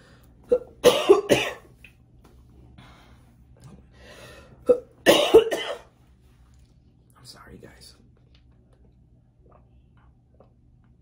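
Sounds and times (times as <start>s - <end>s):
woman coughing: 0.5s - 1.6s, 4.7s - 5.9s.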